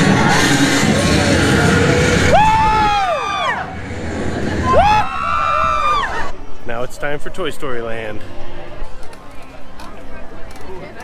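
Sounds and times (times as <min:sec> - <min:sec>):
riders screaming: 0:00.0 - 0:06.3.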